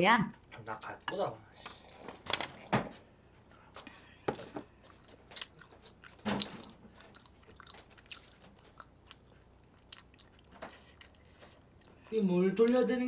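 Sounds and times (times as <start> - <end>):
person chewing food: 3.5 - 12.9.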